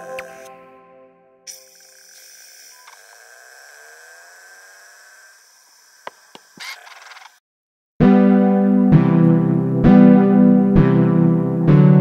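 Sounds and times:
ambient electronic music: 0.0 - 2.0, 8.0 - 12.0.

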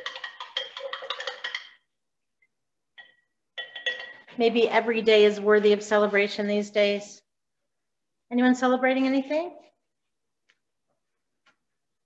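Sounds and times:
paintbrush rattling in glass jar: 0.0 - 2.0, 2.9 - 4.4.

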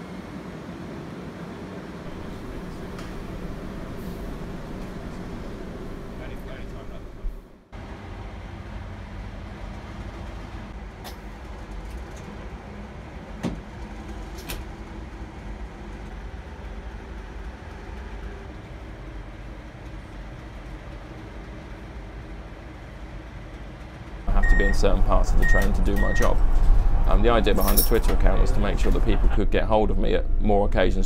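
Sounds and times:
train carriage rumble: 0.4 - 31.0.

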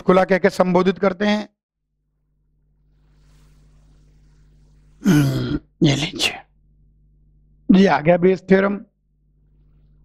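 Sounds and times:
faint low hum: 1.8 - 10.0.

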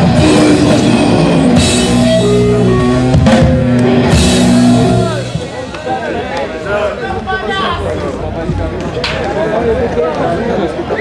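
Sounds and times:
punk band playing live: 0.0 - 6.7
crowd chatter: 0.0 - 11.0.

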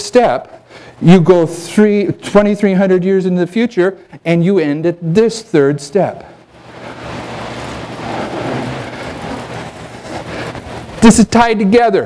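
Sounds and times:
rustling and scraping movements: 6.5 - 11.0.

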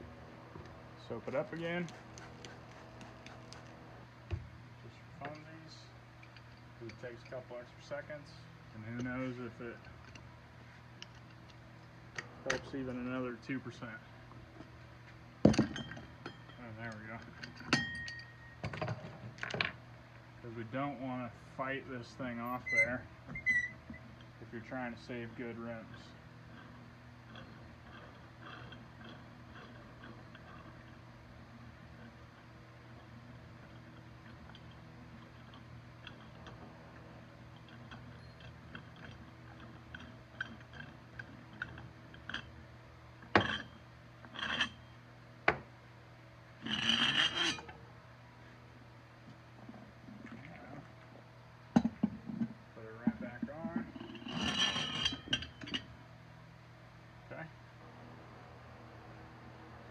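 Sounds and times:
low steady hum: 0.0 - 59.9
scraping: 43.2 - 44.9, 46.6 - 47.9.

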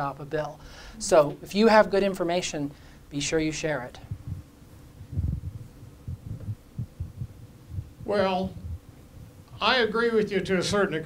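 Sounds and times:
low dull thumps: 4.0 - 9.5.

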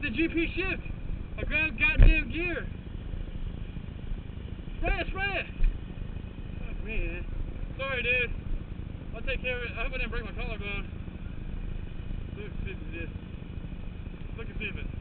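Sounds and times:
motorcycle engine idling: 0.0 - 15.0.

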